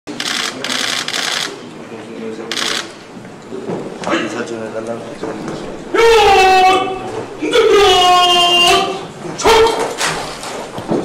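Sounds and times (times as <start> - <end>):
camera shutters clicking: 0.1 - 1.6, 2.5 - 3.0
low voices: 0.1 - 10.0.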